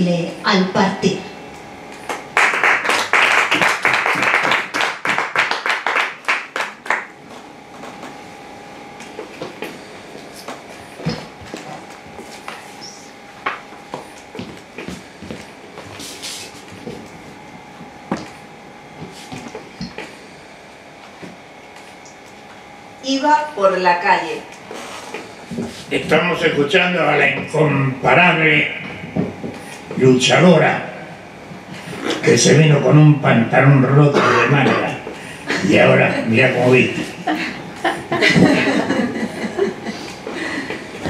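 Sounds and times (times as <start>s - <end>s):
audience applauding: 2.0s - 7.2s
knocks and footsteps: 9.0s - 12.7s, 13.4s - 18.4s.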